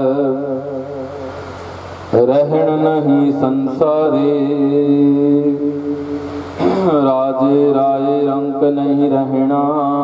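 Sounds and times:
man singing: 0:00.0 - 0:01.3, 0:02.1 - 0:06.0, 0:06.6 - 0:10.0.

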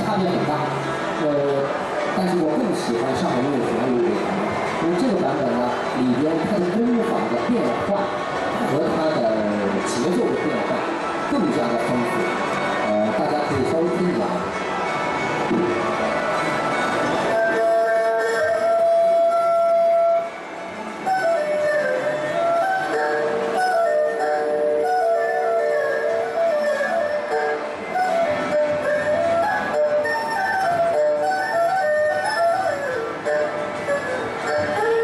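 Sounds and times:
erhu playing slow melody: 0:14.5 - 0:35.0.

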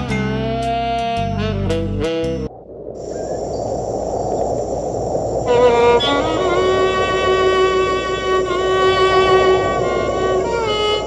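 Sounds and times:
crickets chirring: 0:02.6 - 0:11.0
rushing outdoor noise: 0:03.0 - 0:11.0.

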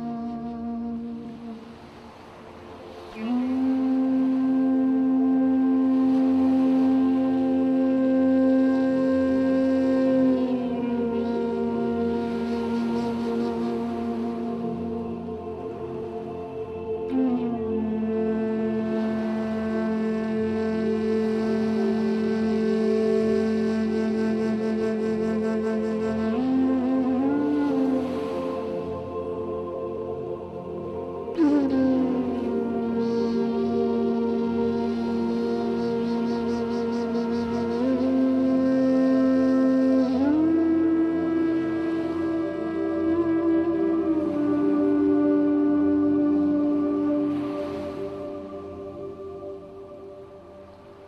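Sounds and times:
ambient drone music: 0:00.0 - 0:51.0.

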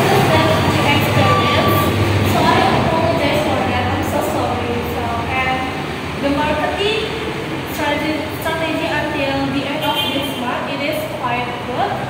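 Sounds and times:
loud steady background noise: 0:00.0 - 0:12.0
woman speaking: 0:00.0 - 0:12.0.

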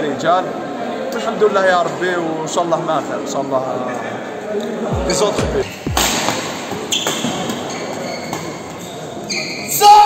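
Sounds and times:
badminton racket hitting shuttlecock: 0:05.9 - 0:07.6.

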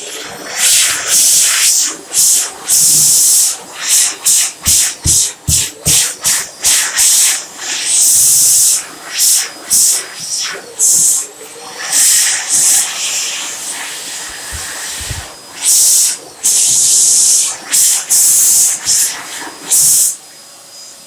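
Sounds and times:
hand dryer blowing air: 0:00.0 - 0:20.2.

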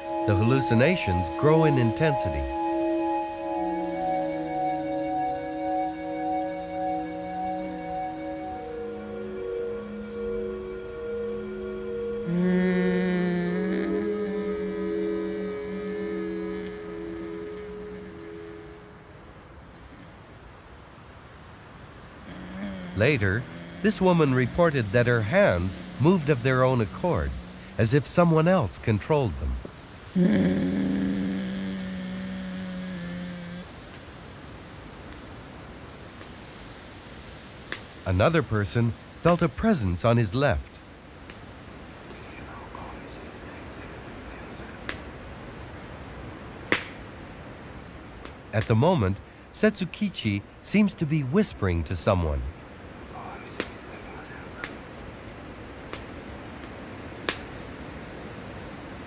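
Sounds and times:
person holding low note: 0:00.0 - 0:19.5, 0:22.2 - 0:29.6, 0:30.2 - 0:33.8
faint hiss: 0:00.0 - 0:59.0.

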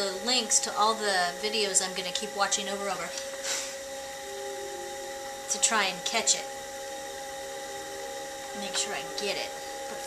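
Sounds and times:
potter's wheel motor whine: 0:00.0 - 0:10.0.

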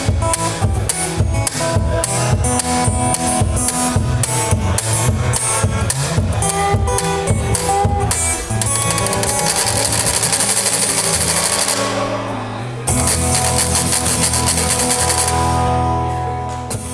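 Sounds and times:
scratchy percussion rhythm: 0:00.0 - 0:12.2, 0:12.9 - 0:15.7
acoustic guitar music: 0:00.0 - 0:16.9.

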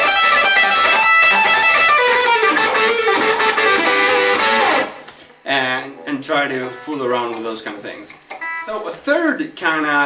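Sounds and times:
electric guitar lead: 0:00.0 - 0:05.2.

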